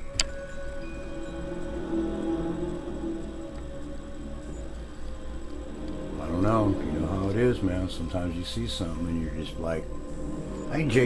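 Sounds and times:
dark ambient music: 0.0 - 11.0.

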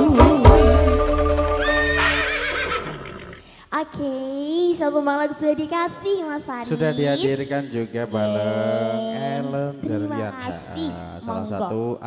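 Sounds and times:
short high rising note: 0.0 - 3.4.

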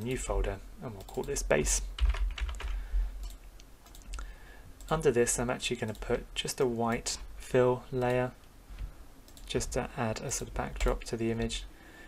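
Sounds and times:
low steady hum: 0.0 - 12.0
computer keyboard typing: 1.0 - 4.2.

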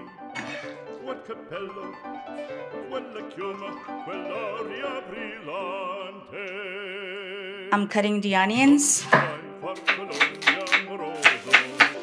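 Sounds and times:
background music: 0.0 - 12.0
knife chopping on wooden board: 9.1 - 12.0.

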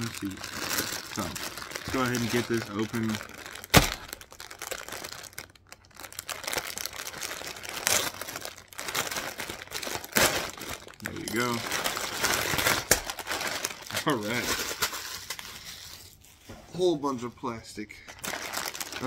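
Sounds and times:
plastic bag crinkling and tearing: 0.0 - 16.4, 18.1 - 19.0
sealed bags rustling: 0.0 - 16.4, 18.1 - 19.0.

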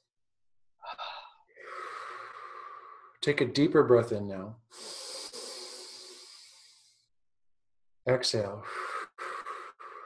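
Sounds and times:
person inhaling deeply: 0.8 - 3.2, 4.7 - 7.1, 8.6 - 10.0.

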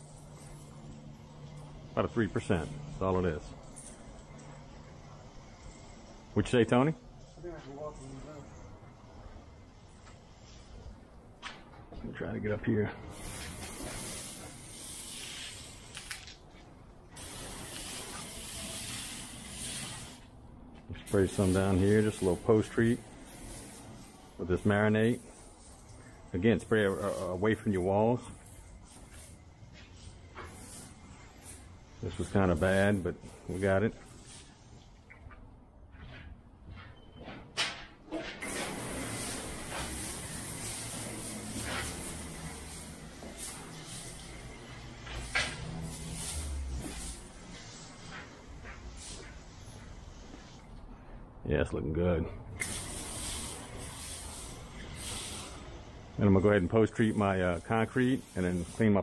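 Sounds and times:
spray wand hissing: 13.1 - 16.3, 17.2 - 20.3, 21.1 - 34.8, 38.4 - 50.7, 52.6 - 59.0.

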